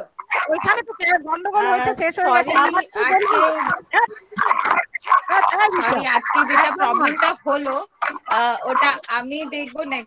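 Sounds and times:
person talking over video call: 0:00.0 - 0:09.7.

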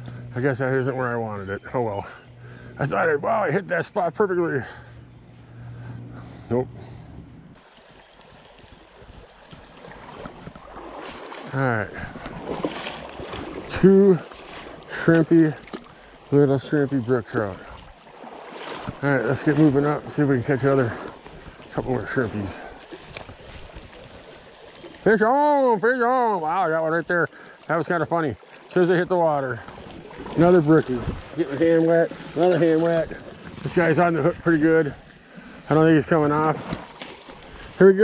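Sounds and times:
flowing creek water: 0:07.5 - 0:38.0.

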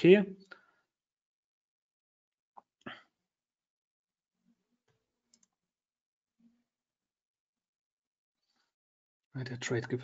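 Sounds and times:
faint clicks: 0:05.3 - 0:05.6.

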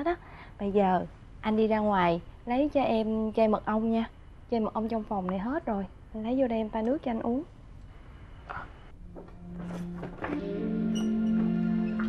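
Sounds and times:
clothing and bedding rustling: 0:09.1 - 0:10.4.

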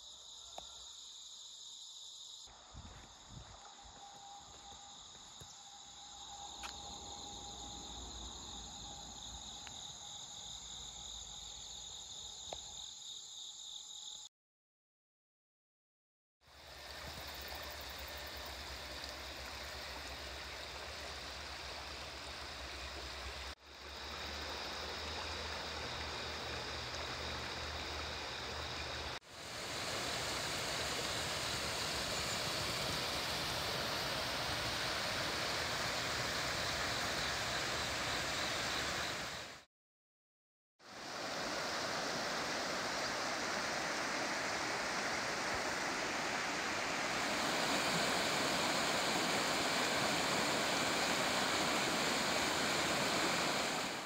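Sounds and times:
stream rushing over stones: 0:29.2 - 0:39.6, 0:40.9 - 0:54.0.

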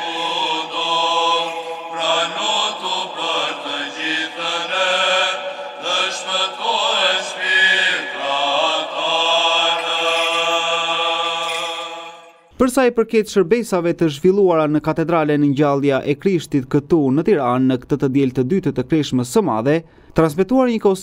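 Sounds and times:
voices chanting over drone: 0:00.0 - 0:12.4.

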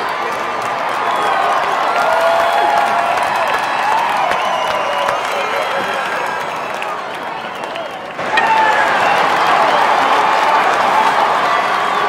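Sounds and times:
spectators cheering and clapping: 0:00.0 - 0:12.0.

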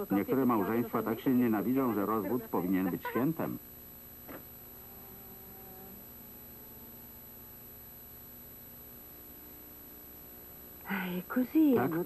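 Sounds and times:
high-pitched whine: 0:00.0 - 0:10.9
faint steady hum: 0:00.0 - 0:12.0.

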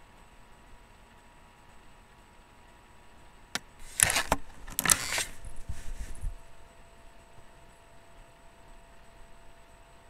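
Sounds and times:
camera handling click: 0:03.8 - 0:05.4
rattling and rustling: 0:03.8 - 0:06.4.

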